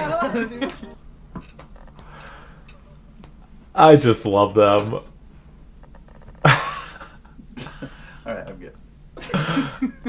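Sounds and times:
man laughing: 0.0s - 1.0s, 6.4s - 8.3s, 9.2s - 10.0s.

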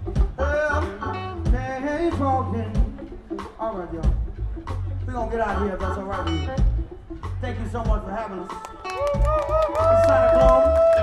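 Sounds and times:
electric bass: 0.0s - 8.2s, 8.9s - 11.0s
guitars: 0.0s - 11.0s
saxophone: 8.5s - 11.0s.

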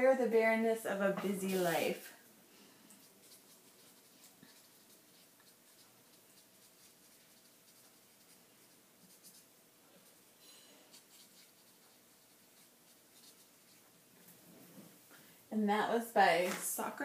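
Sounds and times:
pen scratching on paper: 3.2s - 9.5s, 10.9s - 13.9s.

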